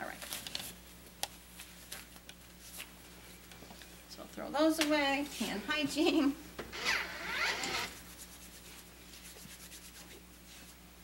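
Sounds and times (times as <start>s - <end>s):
hands rubbing together: 7.8s - 10.8s.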